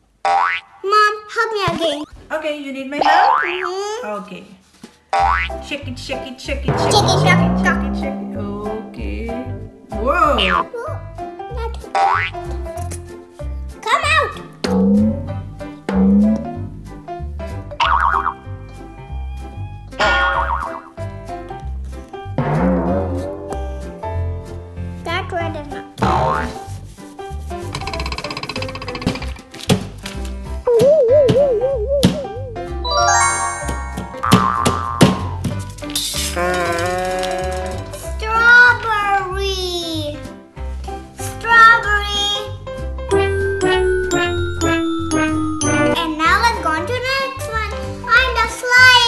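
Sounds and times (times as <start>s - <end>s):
cartoon boing: 3.0s - 3.7s, 6.7s - 8.9s, 12.0s - 12.4s, 17.8s - 18.4s, 20.0s - 20.9s, 34.1s - 35.4s
children's music with bass: 5.2s - 49.0s
wobbling sound effects: 6.7s - 9.4s, 30.7s - 35.4s.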